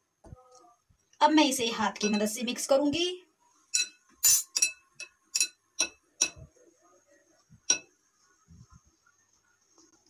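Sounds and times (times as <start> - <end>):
bangles clinking on glass bowl: 3.7 - 6.4.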